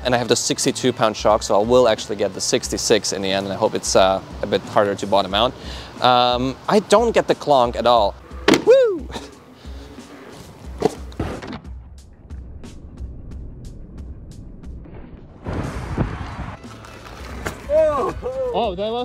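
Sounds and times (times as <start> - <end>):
faint background music: 0.0 - 11.8, 16.6 - 19.0
electric unicycle landing knock: 8.4 - 8.8, 10.7 - 12.4
landing thud: 8.4 - 8.8, 10.8 - 11.8
tyre noise rush: 14.9 - 18.5.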